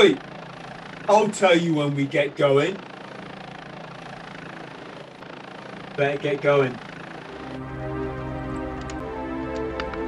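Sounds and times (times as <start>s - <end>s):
helicopter engine and rotor: 0.0s - 10.0s.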